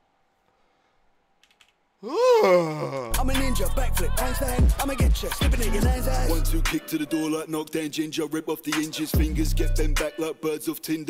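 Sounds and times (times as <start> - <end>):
man groaning: 2.0 - 3.3.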